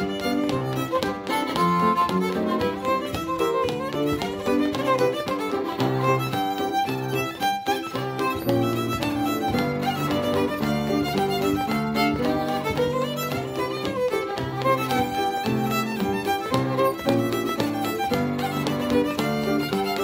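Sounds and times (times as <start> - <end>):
fiddle playing a reel: 0.0 - 20.0
upright piano accompaniment: 0.0 - 20.0.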